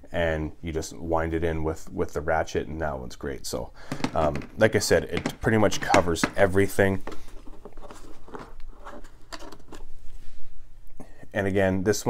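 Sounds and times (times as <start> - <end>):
metal tools handled in plastic case: 5.2 - 9.9.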